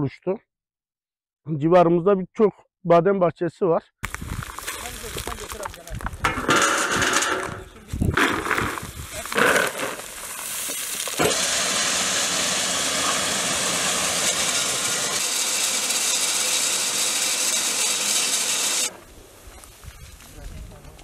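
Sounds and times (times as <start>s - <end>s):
nuts rattling into a sack: 4.4s - 11.2s
hulling machine running: 11.2s - 19.0s.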